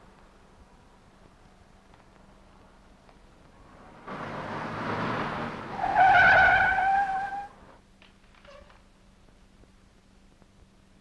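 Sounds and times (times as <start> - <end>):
car engine and tyre noise: 0.0 - 11.0
tyres screeching: 4.1 - 7.6.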